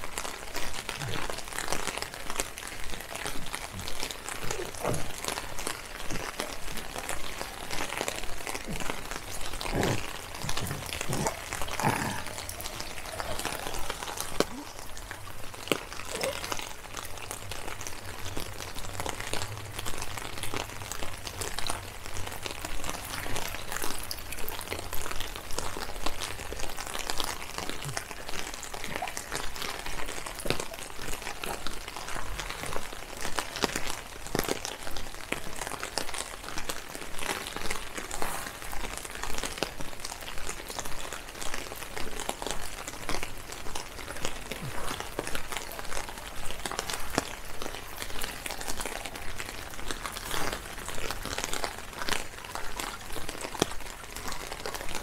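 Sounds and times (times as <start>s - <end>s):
rain drops ticking: 0.0s - 55.0s.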